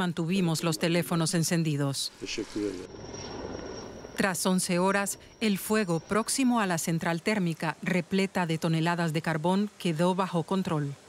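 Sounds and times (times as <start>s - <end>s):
aircraft hum with high whine: 0.0s - 11.0s.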